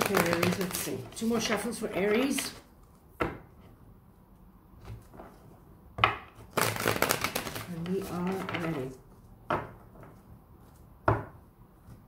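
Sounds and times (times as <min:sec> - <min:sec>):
cards tapping: 0:00.0 - 0:01.3.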